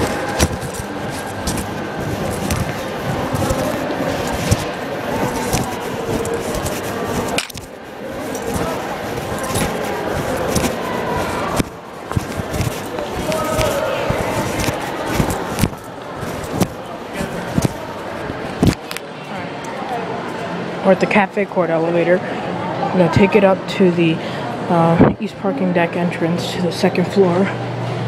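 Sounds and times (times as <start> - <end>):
clicks and rattles: 0.0 - 7.7
cloth rubbing on microphone: 0.0 - 18.8
keys jingling: 0.0 - 18.8
muffled voices talking: 0.0 - 28.0.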